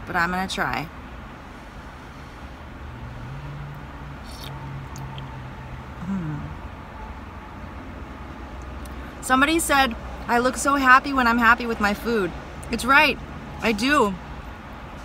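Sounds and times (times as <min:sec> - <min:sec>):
woman humming while chewing: 0:06.0 - 0:06.7.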